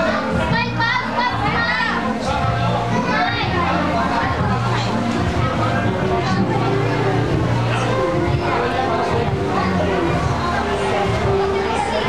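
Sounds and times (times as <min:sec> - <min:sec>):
background music: 0:00.0 - 0:12.0
children chattering: 0:00.0 - 0:12.0.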